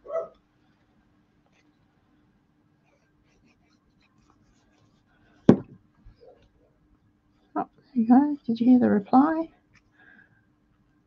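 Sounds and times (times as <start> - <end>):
dog barking: 0.0 - 0.4
faint steady hum: 0.0 - 11.0.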